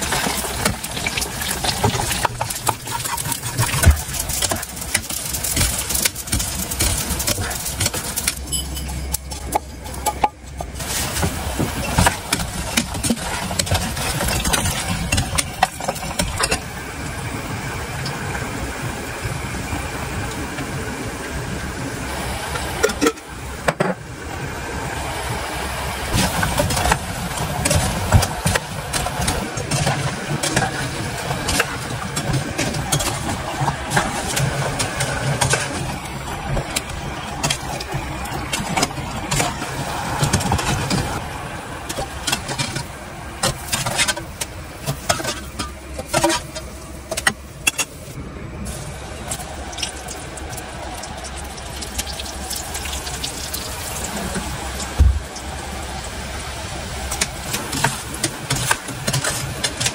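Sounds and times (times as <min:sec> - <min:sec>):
pastries sizzling in hot oil: 0:00.0 - 0:09.4, 0:10.6 - 0:17.1, 0:48.0 - 0:59.9.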